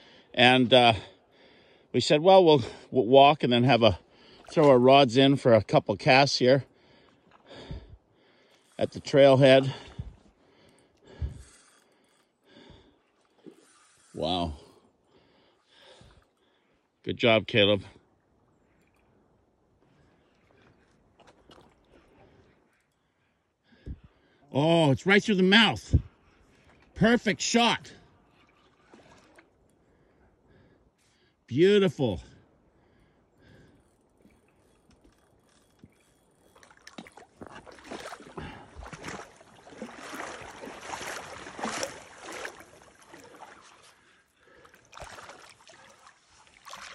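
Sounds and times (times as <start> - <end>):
river water splashing: 26.5 - 29.7, 34.1 - 46.9
faint clicks and ticks: 33.5 - 37.2.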